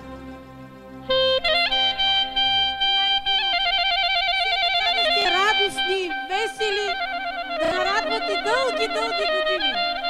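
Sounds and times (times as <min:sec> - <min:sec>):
people talking: 0:02.8 - 0:07.0, 0:07.6 - 0:10.0.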